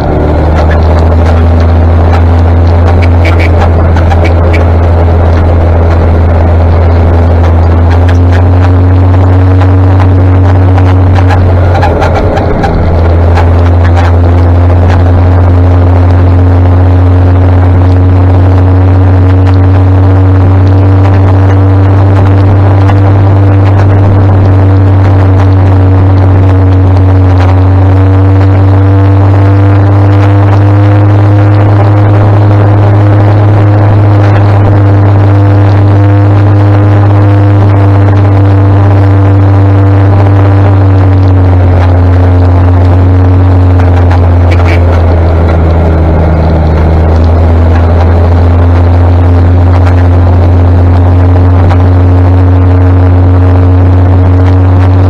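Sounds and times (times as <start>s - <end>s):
armoured vehicle engine drone: 0.0s - 55.0s.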